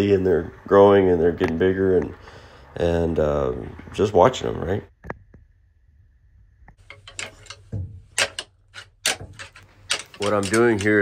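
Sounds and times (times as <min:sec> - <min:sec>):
antlers clacking together: 0:06.8 - 0:11.0.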